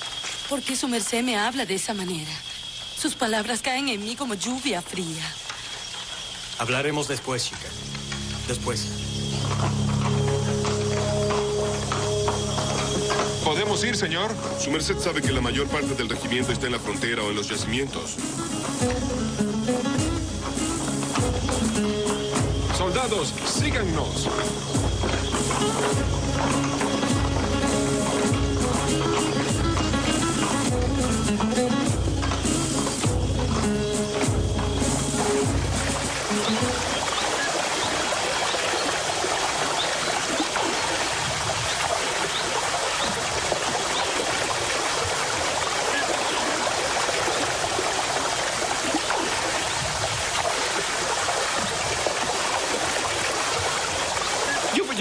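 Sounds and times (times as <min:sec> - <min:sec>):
stream water flowing: 0:00.0 - 0:55.0
background music with low drum beat: 0:07.7 - 0:37.2.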